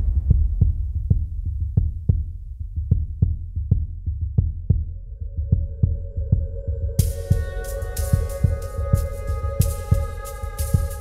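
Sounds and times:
soft low thuds: 0.0s - 10.2s.

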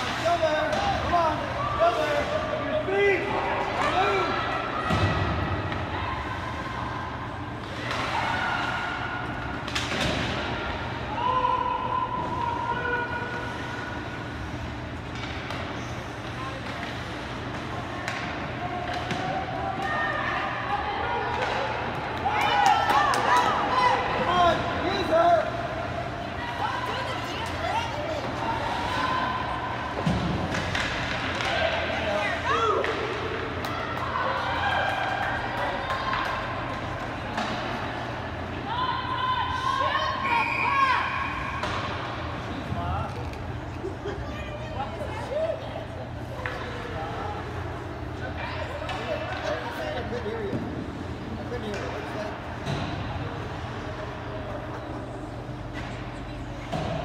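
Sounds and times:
crowd shouting and calling: 0.0s - 14.4s, 18.0s - 43.2s
hockey sticks and puck knocking: 29.9s - 31.8s.

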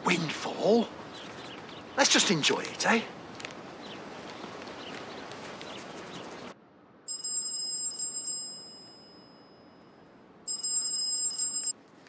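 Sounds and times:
phone ringing: 7.1s - 9.9s, 10.5s - 11.8s.

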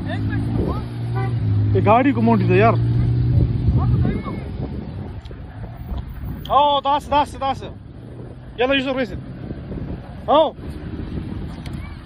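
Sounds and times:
car engine at high revs: 0.0s - 6.2s.

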